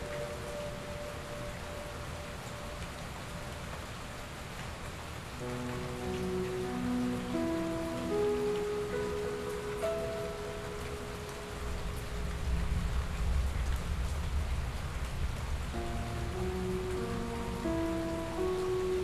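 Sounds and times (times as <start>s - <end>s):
soft piano notes: 0.0s - 4.2s, 5.4s - 14.0s, 15.7s - 19.0s
steady rain falling: 0.0s - 19.0s.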